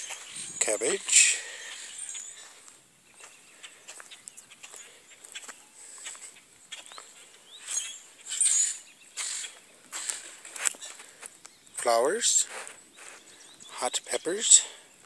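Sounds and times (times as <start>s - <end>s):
bird chirps: 0.0s - 15.0s
small scuffing clicks: 9.9s - 11.6s.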